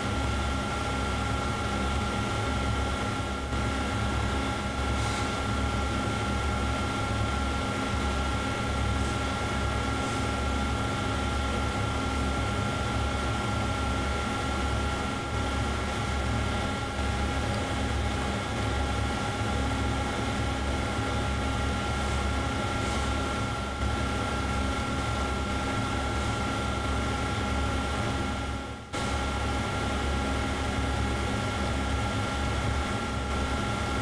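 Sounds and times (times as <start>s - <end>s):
electrical hum and whine: 0.0s - 34.0s.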